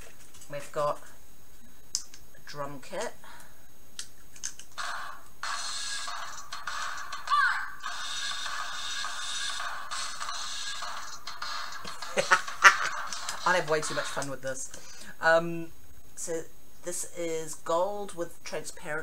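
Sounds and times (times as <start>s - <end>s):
sharp plastic clicks: 4.0s - 4.8s
toy speaker electronic music: 4.8s - 14.3s.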